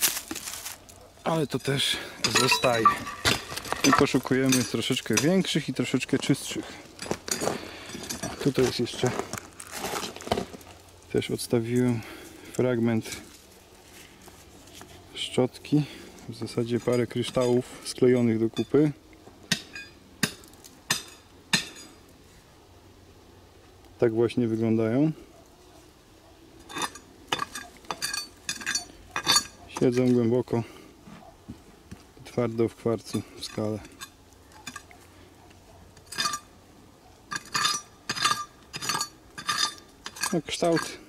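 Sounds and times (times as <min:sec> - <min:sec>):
hand tool clinking on rock: 0:00.4 - 0:09.5, 0:16.5 - 0:18.8, 0:19.5 - 0:22.0, 0:26.6 - 0:30.3, 0:32.5 - 0:35.0, 0:35.9 - 0:36.6, 0:37.3 - 0:41.0.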